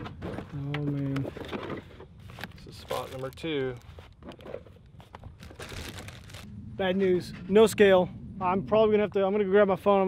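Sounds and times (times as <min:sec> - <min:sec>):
plastic packets rustling: 0:02.3 - 0:06.5.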